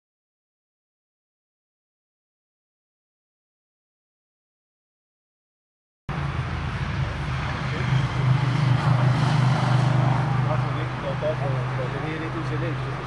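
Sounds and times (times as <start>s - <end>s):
engine running with low hum: 6.1s - 13.0s
faint voices: 7.0s - 9.1s, 10.2s - 13.0s.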